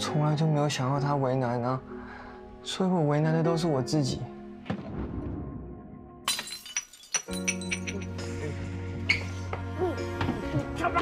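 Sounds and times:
wine glass shattering on floor: 6.2 - 8.3
glass shards tinkling: 6.3 - 8.2.

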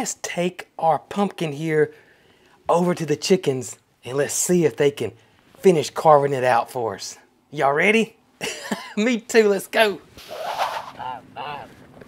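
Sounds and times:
man laughing: 8.4 - 9.0, 10.3 - 11.8.

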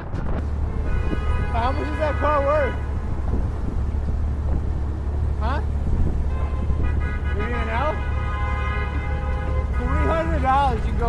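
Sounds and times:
street traffic: 0.0 - 11.0
wind rumbling on microphone: 0.0 - 11.0.

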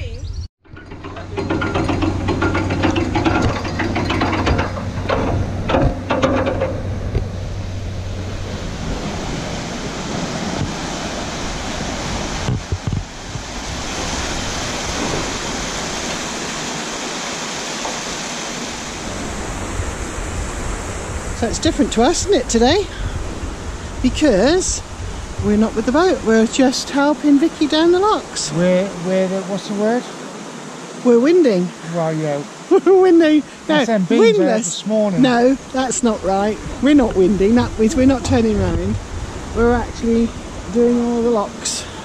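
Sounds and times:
water rushing: 0.6 - 42.0
low steady hum: 32.7 - 42.0.

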